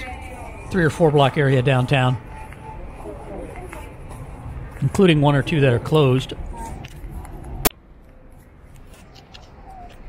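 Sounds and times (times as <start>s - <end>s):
city street ambience: 0.0s - 10.0s.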